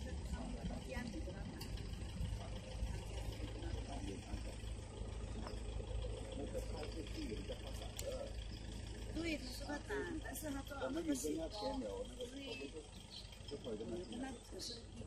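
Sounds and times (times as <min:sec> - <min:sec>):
faint voices talking: 0:00.0 - 0:15.0.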